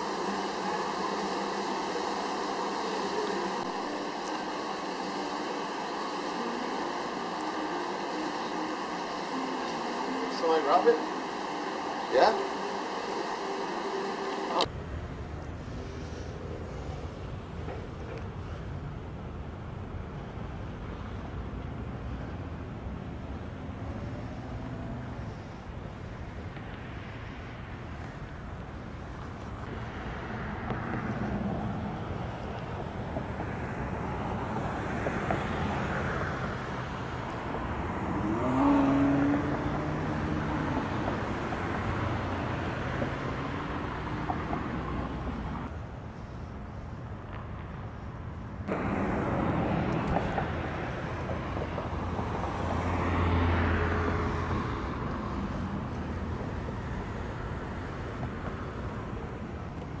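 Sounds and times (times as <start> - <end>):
traffic driving slowly past: 0.0 - 60.0.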